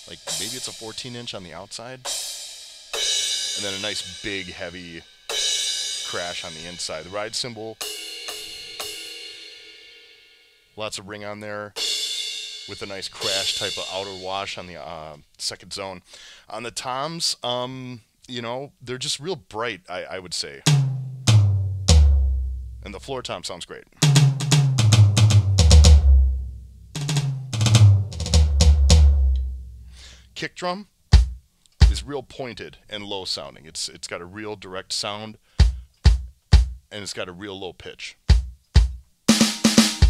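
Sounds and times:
electronic ride cymbal ringing: 0:00.0 - 0:01.2
electronic drum tom fills: 0:00.0 - 0:01.5, 0:03.0 - 0:09.7, 0:12.7 - 0:14.6, 0:20.6 - 0:23.2, 0:24.0 - 0:30.2, 0:31.1 - 0:32.1, 0:35.6 - 0:36.9, 0:38.3 - 0:40.0.

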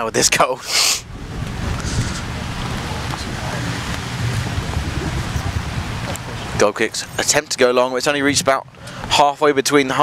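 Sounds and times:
rain hiss: 0:00.6 - 0:09.2
wind buffeting microphone: 0:01.0 - 0:10.0.

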